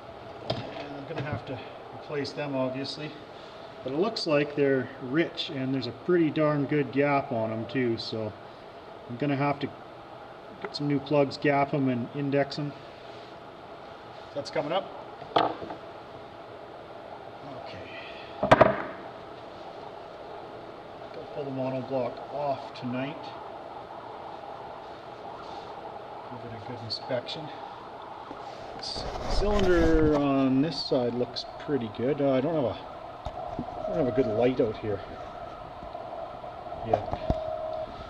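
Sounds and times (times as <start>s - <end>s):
workshop room tone: 0.0s - 8.5s, 9.1s - 16.5s, 17.2s - 38.0s
faint hiss: 0.0s - 33.2s.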